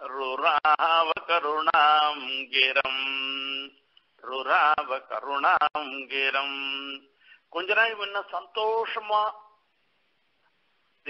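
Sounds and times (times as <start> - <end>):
man chanting: 0.0 - 9.6.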